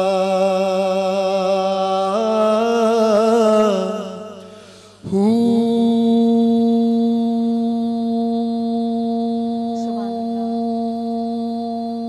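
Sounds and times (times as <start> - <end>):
man singing a long held note: 0.0 - 12.0.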